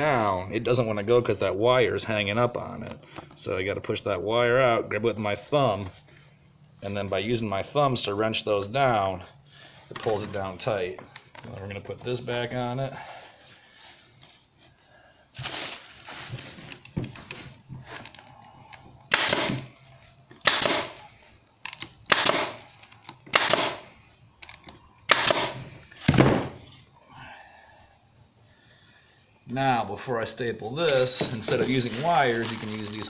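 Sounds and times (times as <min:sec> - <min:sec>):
pneumatic nail gun firing: 0:19.1 - 0:19.7, 0:20.4 - 0:21.1, 0:22.1 - 0:22.6, 0:23.3 - 0:23.9, 0:25.1 - 0:26.5.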